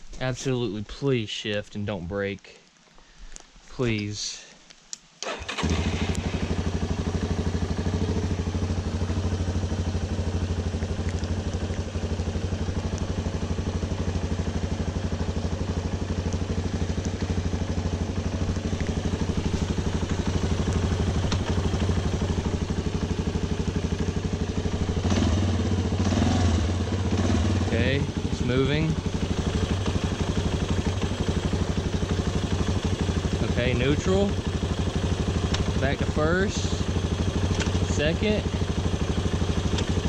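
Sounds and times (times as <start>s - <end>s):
atv engine idling: 5.2s - 40.0s.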